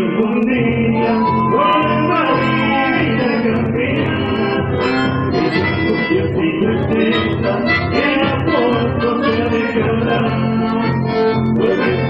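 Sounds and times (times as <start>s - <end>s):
acoustic guitar: 0.0s - 12.0s
man singing: 0.0s - 12.0s
bandoneon: 1.0s - 12.0s
button accordion: 1.0s - 12.0s.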